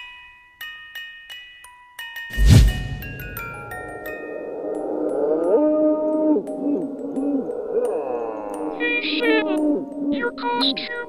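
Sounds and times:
ghostly moaning voice: 4.3 - 10.4.

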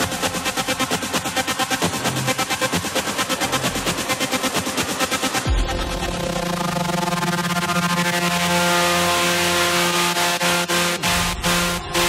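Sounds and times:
held synth chord: 5.9 - 12.0.

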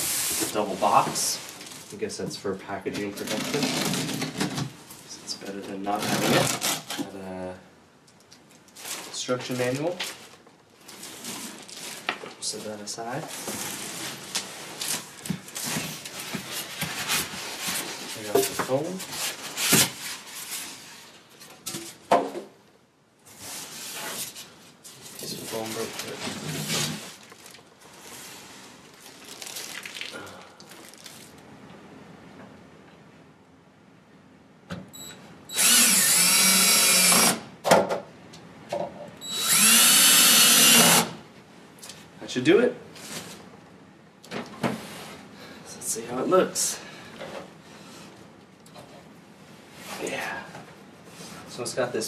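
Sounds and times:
plastic wrapping crinkling: 8.3 - 12.6, 26.8 - 31.4
cordless drill driving screws: 35.5 - 37.4, 39.3 - 41.1.

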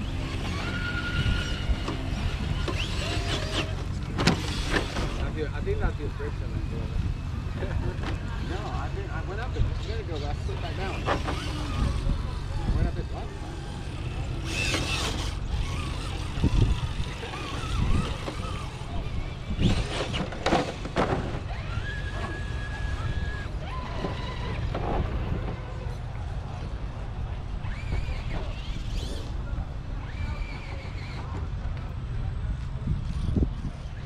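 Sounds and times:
people talking indistinctly: 4.6 - 20.2.

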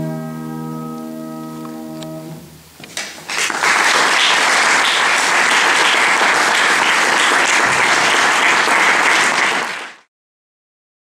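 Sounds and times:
audience applauding: 3.0 - 10.1.

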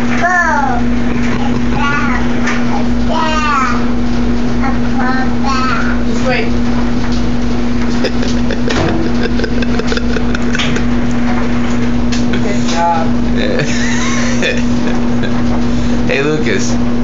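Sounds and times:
loud machine hum: 0.0 - 17.0
child vocal sounds: 0.2 - 4.0.

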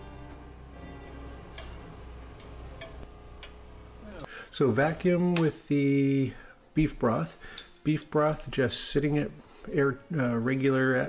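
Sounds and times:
tongs clicking on grill grate: 7.4 - 8.1.

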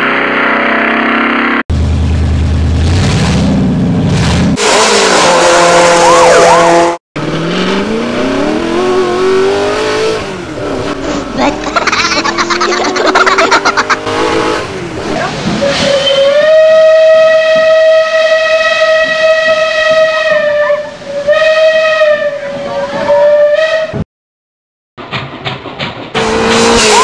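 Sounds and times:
steam locomotive whistle: 4.6 - 7.0, 15.6 - 24.0.

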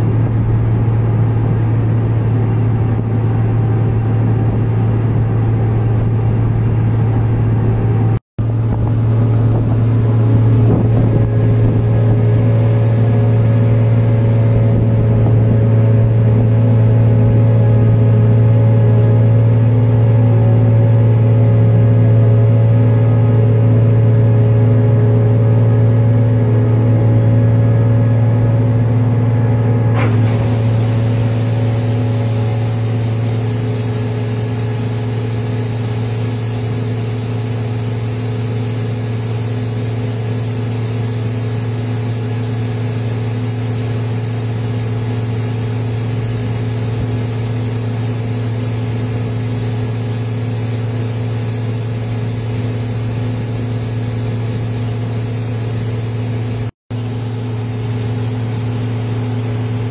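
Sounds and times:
combine harvester engine humming: 0.0 - 59.9
hiss of falling grain: 30.0 - 59.9.

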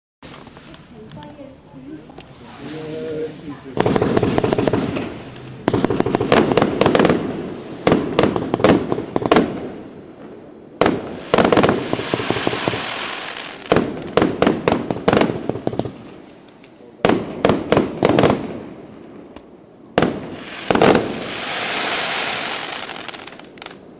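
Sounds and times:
firework hissing: 2.2 - 8.4, 10.9 - 14.2, 20.3 - 23.8
firework bangs: 3.7 - 16.2, 17.0 - 23.9.

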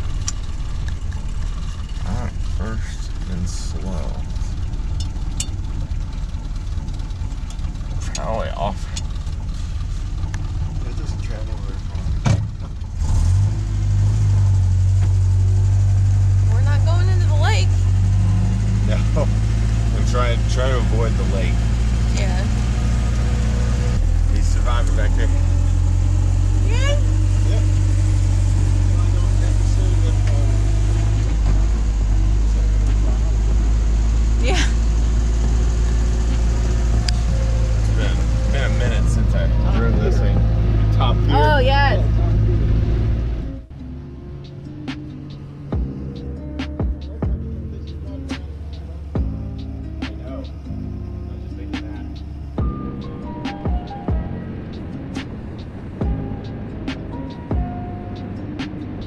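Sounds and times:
engine running rough: 0.0 - 59.0.

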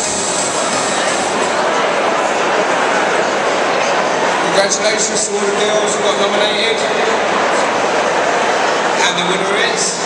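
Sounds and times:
background music bass: 0.0 - 1.6.

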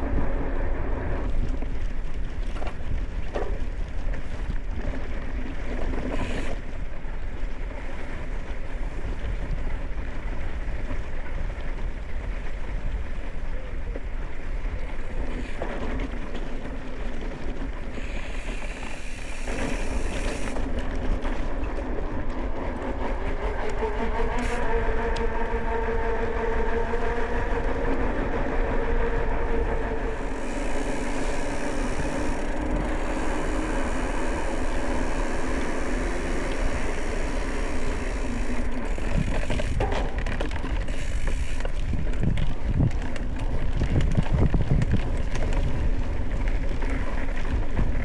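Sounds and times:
bike tyres rolling: 0.0 - 48.0
wind on the microphone: 0.0 - 48.0
steady hum: 21.6 - 41.9.

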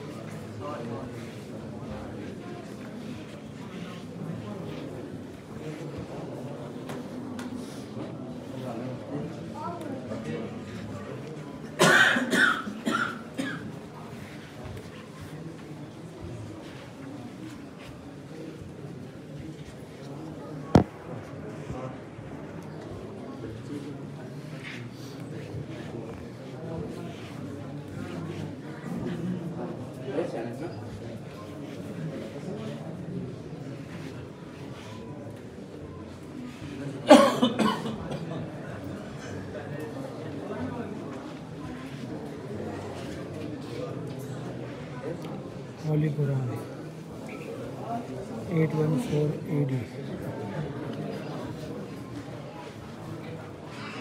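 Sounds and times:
soft background murmur: 0.0 - 54.0
person coughing: 11.8 - 13.7, 37.1 - 38.2.

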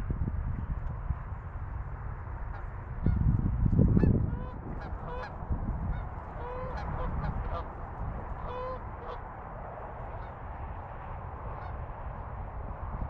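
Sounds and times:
geese honking: 4.0 - 9.3, 9.9 - 10.4, 11.6 - 11.8.

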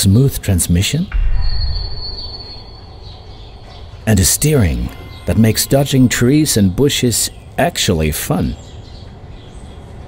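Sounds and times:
low mechanical rumble: 1.1 - 4.0
steady high-pitched whine: 1.1 - 6.7.

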